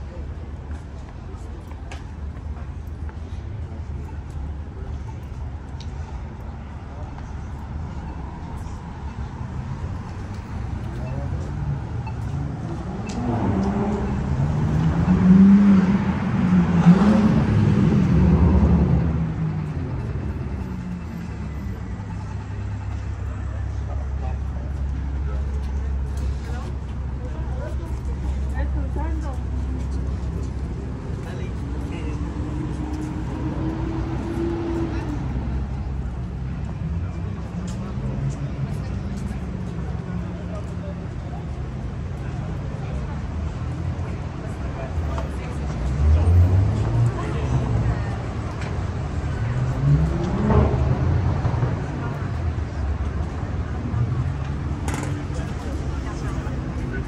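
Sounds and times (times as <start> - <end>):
car engine passing: 12.4 - 20.2, 29.5 - 39.4.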